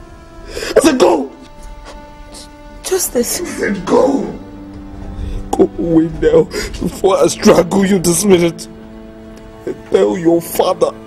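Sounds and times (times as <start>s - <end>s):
soft film score music: 0.0s - 11.0s
man sobbing: 5.5s - 7.1s.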